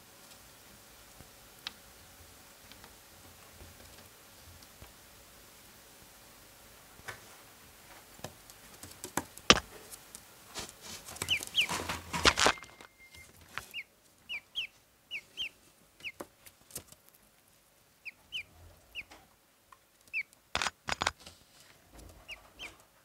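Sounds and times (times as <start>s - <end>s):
sharp taps and knocks: 9.0s - 9.7s
ducklings peeping: 11.1s - 16.3s, 18.0s - 19.2s, 20.1s - 20.4s, 22.2s - 22.9s.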